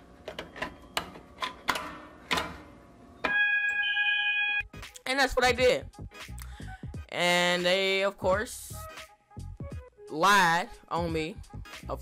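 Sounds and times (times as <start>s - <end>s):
loud steady fire alarm tone: 3.3s - 4.6s.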